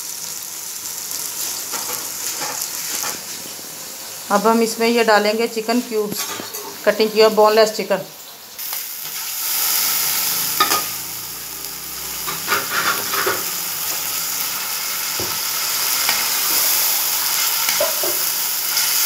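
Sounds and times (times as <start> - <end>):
chicken sizzling in hot oil: 0.0 - 19.0
spoon scraping and knocking pan: 10.6 - 11.0, 12.2 - 14.0, 15.1 - 18.9.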